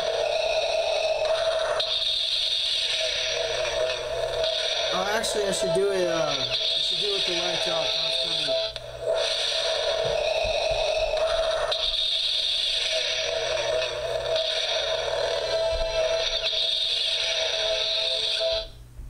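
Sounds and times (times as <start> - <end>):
music from small speaker: 3.4 - 18.8.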